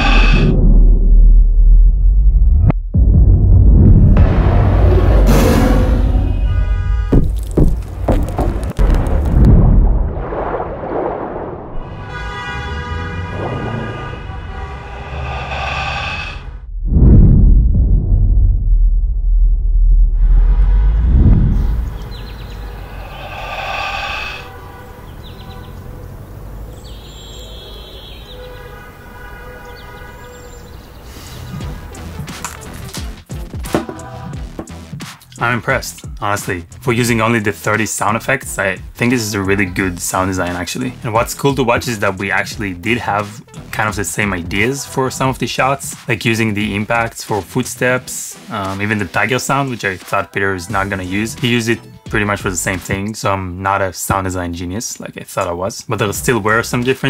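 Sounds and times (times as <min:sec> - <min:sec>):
sharp impacts: 0:00.0 - 0:01.3, 0:04.0 - 0:11.2
whooshes: 0:00.0 - 0:06.5, 0:13.3 - 0:25.0
deep booms and rumbles: 0:00.0 - 0:12.0, 0:13.3 - 0:23.7.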